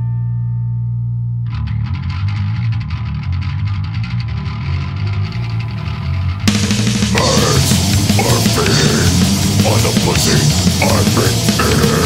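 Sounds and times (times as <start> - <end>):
distorted electric guitar: 0.0 - 12.0
low bass note: 5.3 - 12.0.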